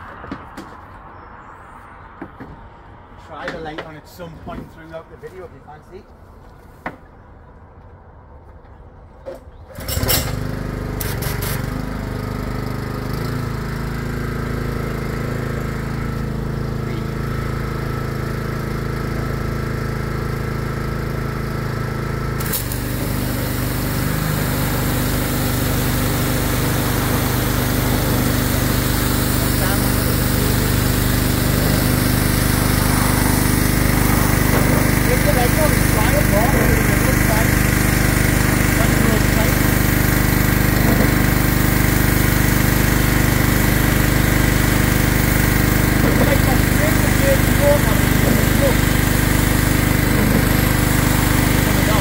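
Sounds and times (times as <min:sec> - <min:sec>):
pressure washer engine running: 0:09.7 - 0:52.0
water jet hissing: 0:22.4 - 0:52.0.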